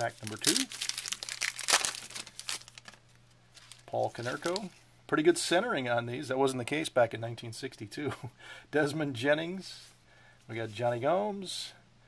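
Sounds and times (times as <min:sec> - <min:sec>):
wrapper crinkling as torn open: 0:00.0 - 0:04.7.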